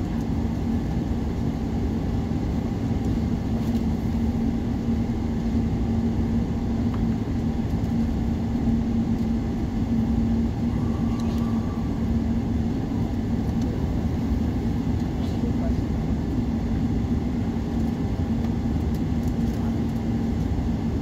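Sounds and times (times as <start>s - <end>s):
airliner cabin rumble: 0.0s - 21.0s
constant hum: 0.0s - 21.0s.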